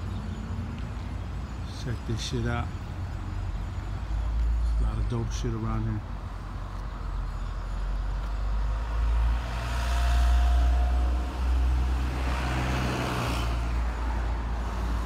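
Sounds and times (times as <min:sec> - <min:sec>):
road traffic engine rumble: 0:00.0 - 0:15.0.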